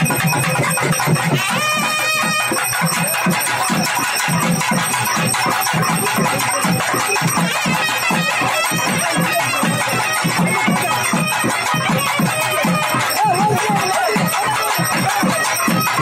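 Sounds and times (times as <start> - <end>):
rapid dense drum beats: 0.0 - 16.0
held wind instrument note: 1.2 - 5.9, 6.5 - 16.0.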